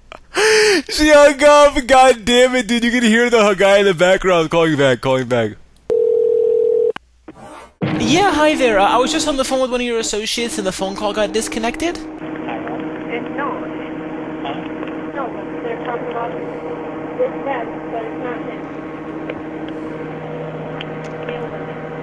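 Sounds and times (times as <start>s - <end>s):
steady hum: 7.8s - 22.0s.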